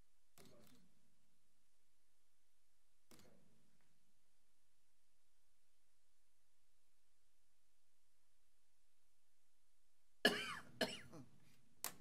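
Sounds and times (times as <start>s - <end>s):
person coughing: 10.3s - 11.3s.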